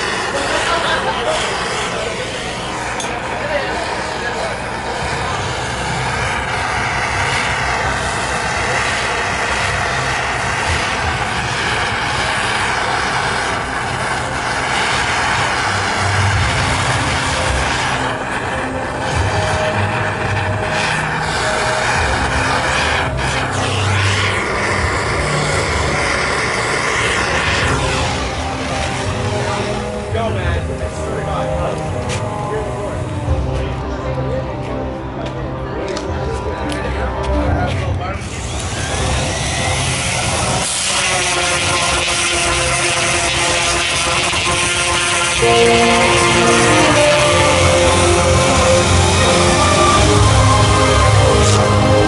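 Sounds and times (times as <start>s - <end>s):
gas blowtorch roaring: 0.0s - 52.0s.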